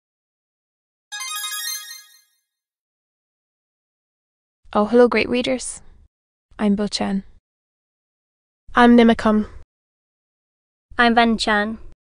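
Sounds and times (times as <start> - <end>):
bright chime jingle: 1.1 - 2.3.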